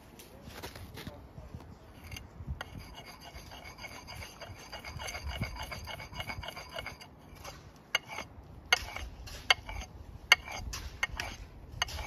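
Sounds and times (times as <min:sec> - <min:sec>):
whetstone honing axe head: 0:02.0 - 0:12.0.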